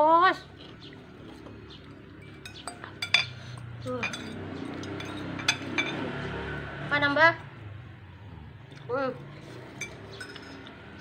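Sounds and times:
cutlery clinking against ceramic bowls: 1.3s - 6.2s, 9.7s - 11.0s.

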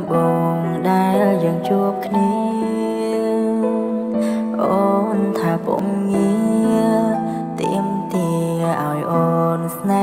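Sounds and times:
sped-up pop song: 0.0s - 10.0s.

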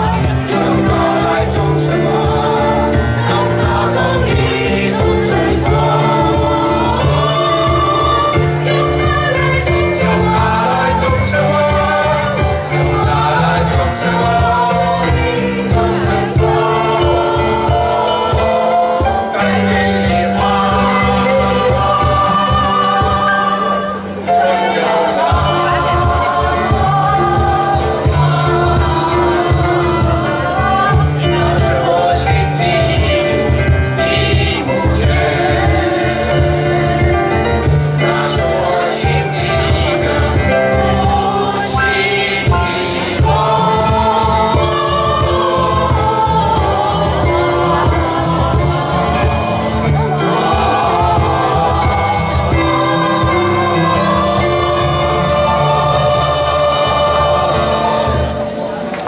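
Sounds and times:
cajon beat: 0.0s - 59.0s
mixed choir singing chords: 0.0s - 59.0s
piano accompaniment: 0.0s - 59.0s.

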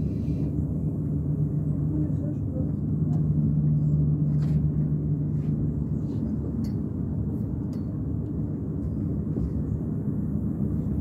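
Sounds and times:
cable car rumble and hum: 0.0s - 11.0s.

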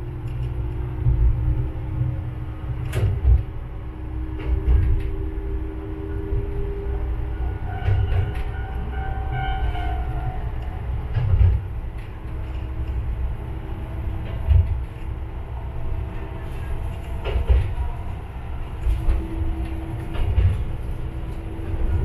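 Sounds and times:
train wheels thumping rail joints: 2.6s - 5.6s, 7.2s - 22.0s.

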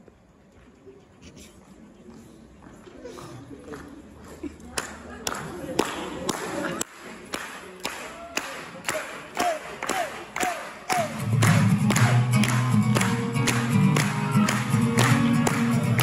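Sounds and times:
sharp percussive beat: 9.0s - 16.0s
acoustic guitar strumming: 10.9s - 16.0s.

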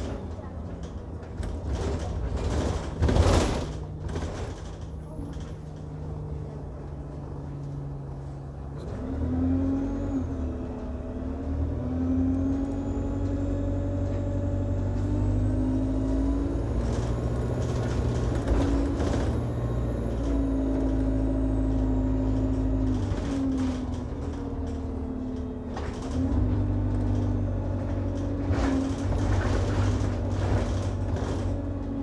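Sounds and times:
bus diesel engine: 0.0s - 32.0s.

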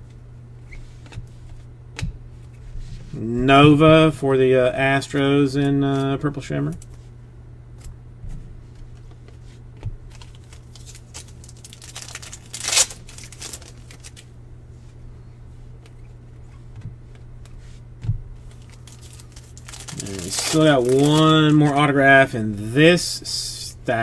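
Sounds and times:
steady low hum: 0.0s - 24.0s
cards being flipped by hand: 7.8s - 14.3s, 18.4s - 22.0s
crinkle: 10.1s - 14.3s, 18.4s - 22.0s.

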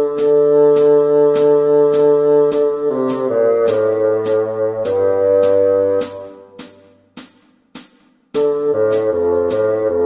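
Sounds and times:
bassoon note: 0.0s - 7.1s, 8.4s - 10.0s
hi-hat ticks: 0.0s - 10.0s.

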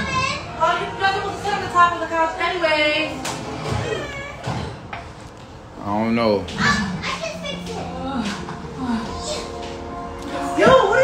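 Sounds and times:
child's high-pitched voice: 0.0s - 0.5s, 6.6s - 8.3s.

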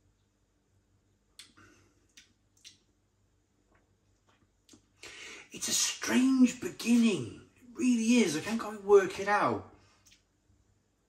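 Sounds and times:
wet mouth smacks: 1.4s - 2.9s.

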